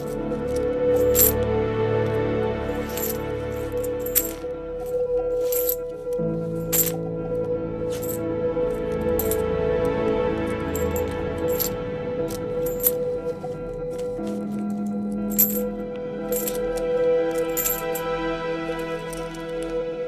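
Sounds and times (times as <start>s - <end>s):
coins clinking: 0.0s - 19.9s
background music of held notes: 0.0s - 20.0s.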